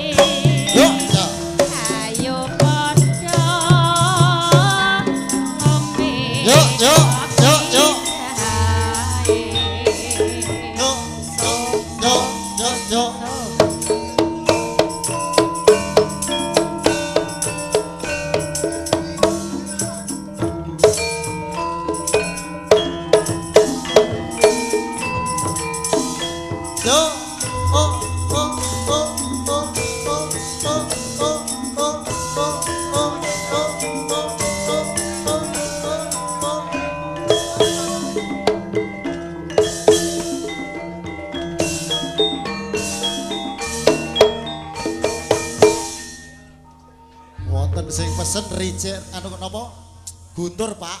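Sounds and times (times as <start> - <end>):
metallophones ringing: 0.0 - 51.0.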